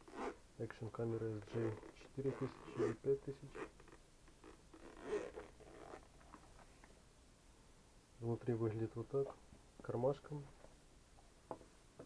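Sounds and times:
zipper being pulled open: 0:00.0 - 0:00.4, 0:01.4 - 0:06.4.

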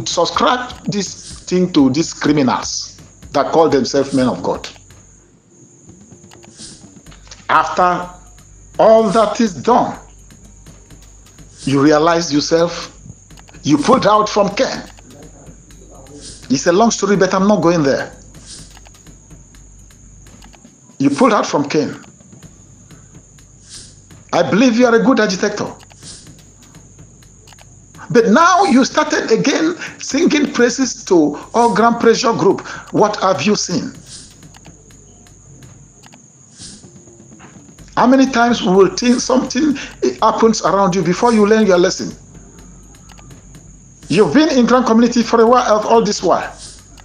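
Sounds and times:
crickets chirping: 0:00.0 - 0:47.0
faint hiss: 0:06.3 - 0:19.2, 0:20.4 - 0:34.7, 0:36.0 - 0:47.0.

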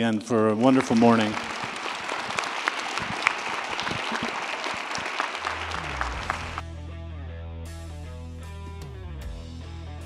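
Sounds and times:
audience applauding: 0:00.0 - 0:06.6
music: 0:05.4 - 0:10.0.

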